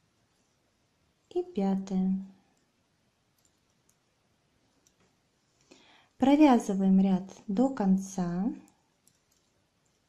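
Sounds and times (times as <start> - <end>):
metal knitting needles clicking: 3.3 - 4.0, 8.6 - 10.0.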